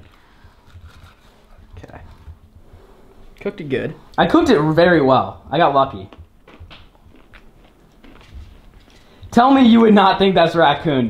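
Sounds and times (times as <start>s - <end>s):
person chewing: 0.0s - 2.4s, 6.0s - 9.3s.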